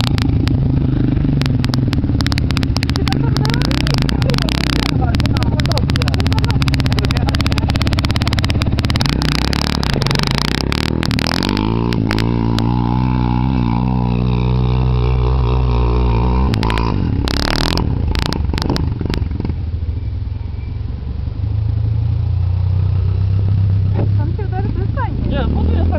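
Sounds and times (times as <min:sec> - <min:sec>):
quad bike engine revving: 0:00.0 - 0:25.9.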